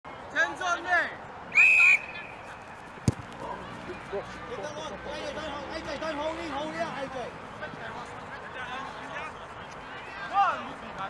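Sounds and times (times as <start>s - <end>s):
referee's whistle blast: 1.6s - 2.4s.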